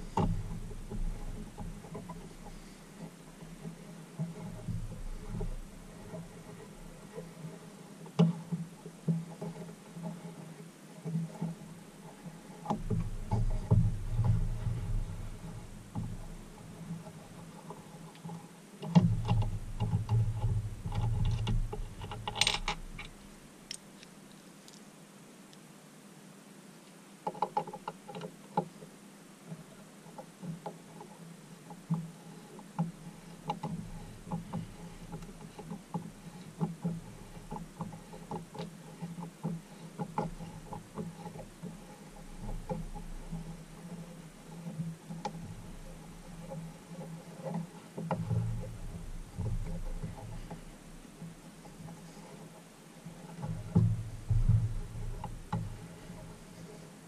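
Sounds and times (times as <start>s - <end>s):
dull bumps and handling rumble: 0.0s - 23.5s, 30.3s - 57.0s
metallic clicks and clinks: 21.3s - 24.8s.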